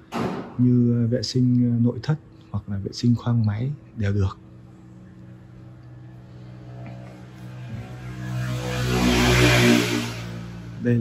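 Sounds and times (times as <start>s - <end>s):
vehicle passing by: 4.9s - 11.0s.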